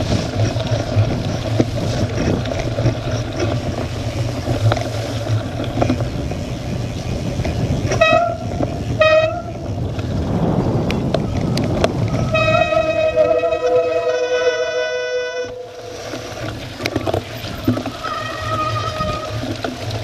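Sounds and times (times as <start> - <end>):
wind rushing over camera: 0.0 - 13.8
bike tyres rolling on wet grass: 0.0 - 20.0
held horn-like tone: 7.9 - 9.6, 11.6 - 16.6
horn toots: 7.9 - 9.6, 12.1 - 16.5.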